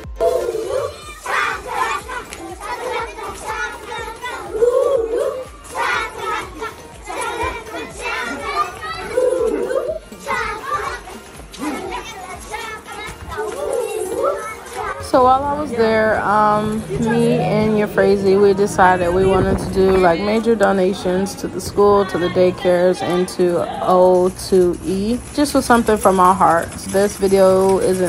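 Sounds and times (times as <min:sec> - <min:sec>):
young children shouting: 0:00.0 - 0:24.2.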